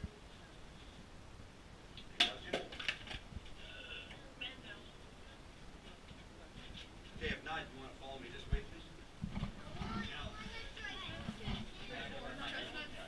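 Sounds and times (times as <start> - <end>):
faint distant voices: 0.0 - 13.0.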